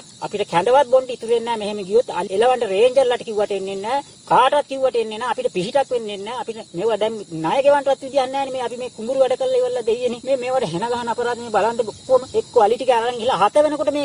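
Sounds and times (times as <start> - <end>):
faint recording hiss: 0.0 - 14.0
man speaking: 0.2 - 14.0.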